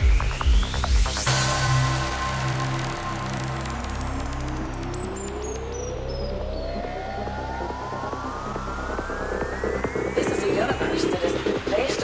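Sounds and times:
low bass drone: 0:00.0 - 0:12.0
rising synth sweep: 0:00.0 - 0:12.0.

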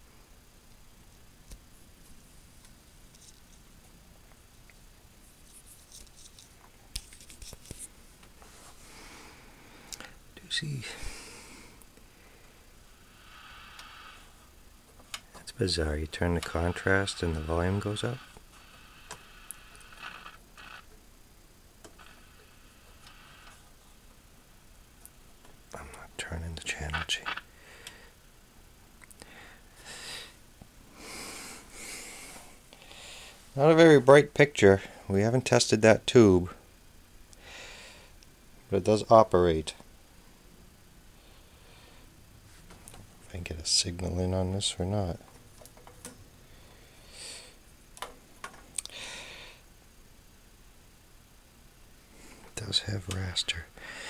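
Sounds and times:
television speaker hiss: 0:00.0 - 0:54.0
weak tones: 0:15.5 - 0:18.4.

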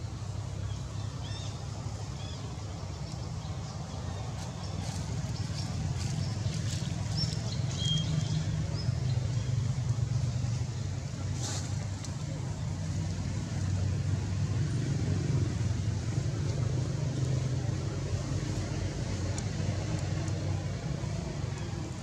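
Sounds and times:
distant traffic rumble: 0:00.0 - 0:22.0.

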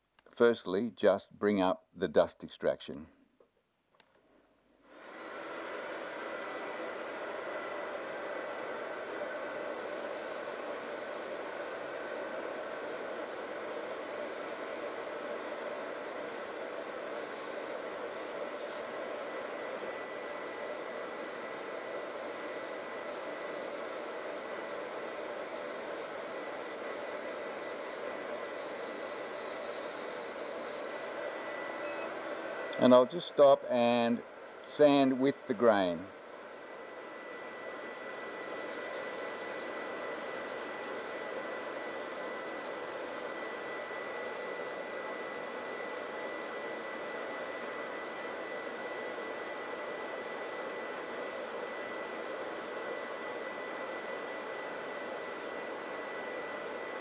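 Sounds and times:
sandpaper rasping on spinning wood: 0:09.0 - 0:18.9, 0:20.0 - 0:31.2, 0:38.5 - 0:39.7.

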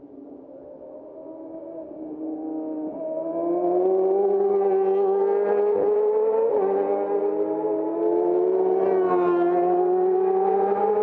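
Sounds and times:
racing motorcycle engine revving: 0:03.3 - 0:11.0.

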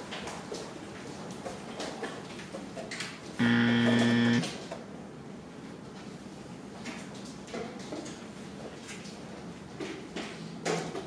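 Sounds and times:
steady buzz: 0:03.4 - 0:04.5.

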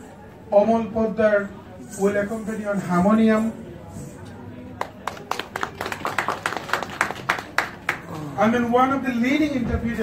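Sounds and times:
small audience applause: 0:04.8 - 0:08.4.

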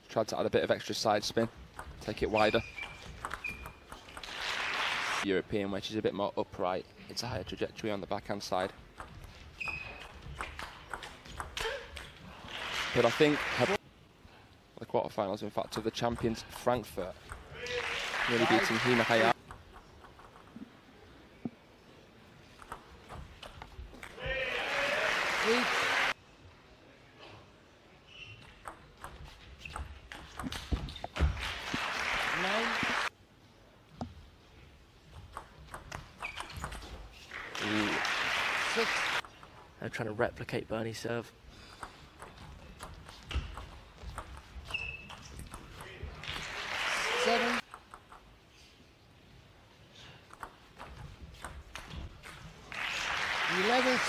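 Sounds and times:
table tennis ball clicking: 0:02.8 - 0:04.3
crowd applause: 0:04.3 - 0:05.2, 0:12.5 - 0:13.8, 0:17.6 - 0:19.4, 0:24.5 - 0:26.2, 0:31.4 - 0:33.1, 0:37.4 - 0:39.2, 0:46.2 - 0:47.6, 0:52.7 - 0:54.0
person shouting: 0:24.2 - 0:25.1.

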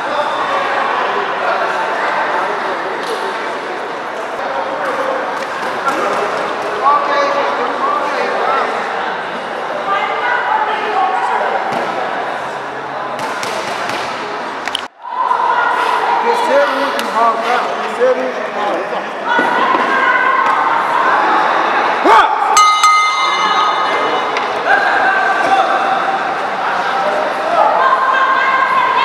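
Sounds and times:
crowd chatter in a hall: 0:00.0 - 0:29.0
boxing ring bell ringing: 0:22.6 - 0:24.4.

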